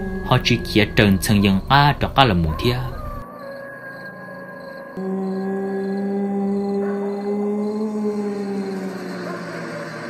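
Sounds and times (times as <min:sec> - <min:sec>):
low droning tone: 0:00.0 - 0:02.2.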